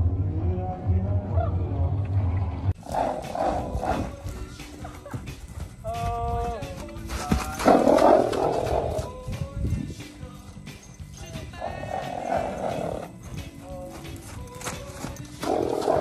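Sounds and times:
music with low beat: 0.0 - 16.0
horse snorting: 2.8 - 4.4, 7.6 - 9.1, 11.6 - 13.4, 15.3 - 16.0.

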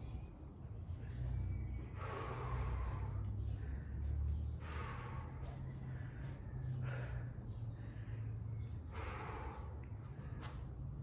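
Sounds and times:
man breathing hard: 1.0 - 11.0.

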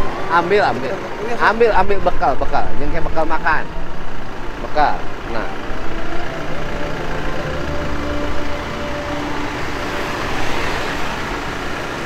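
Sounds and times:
vehicle engine hum: 0.0 - 12.0.

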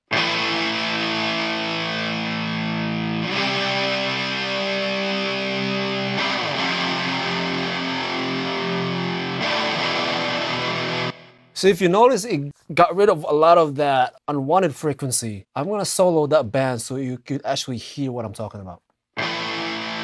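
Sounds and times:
distorted electric guitar chords: 0.0 - 11.6, 19.2 - 20.0.

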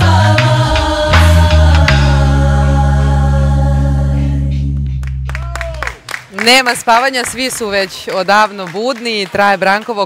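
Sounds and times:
people clapping: 0.0 - 2.3, 4.8 - 10.0
live band and singers: 0.0 - 5.0.

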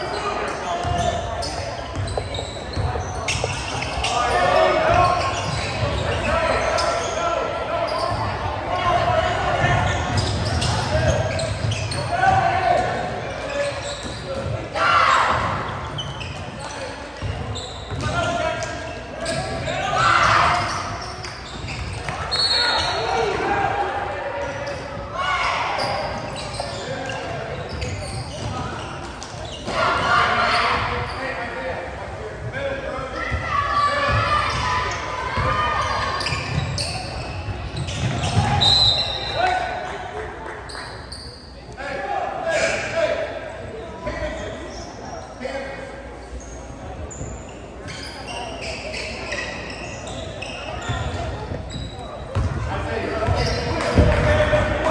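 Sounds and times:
crowd chatter in echoing gym: 0.0 - 54.9.

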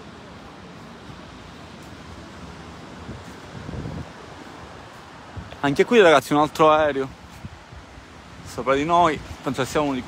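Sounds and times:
wind on microphone: 0.9 - 5.9, 6.6 - 10.0.

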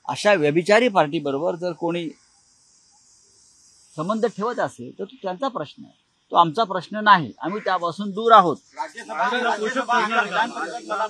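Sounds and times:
faint high-pitched hiss: 0.0 - 11.0.

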